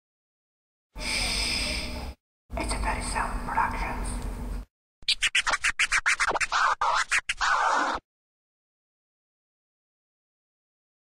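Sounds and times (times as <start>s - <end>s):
person whispering shhh: 1.0s - 2.2s
turntable scratches: 5.0s - 8.0s.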